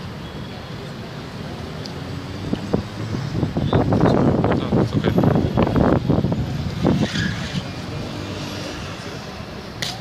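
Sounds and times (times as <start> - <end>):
car passing by: 6.8 - 10.0.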